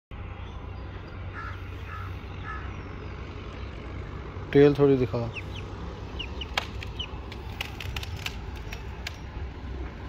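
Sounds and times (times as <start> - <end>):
low outdoor background rumble: 0.1 - 10.0.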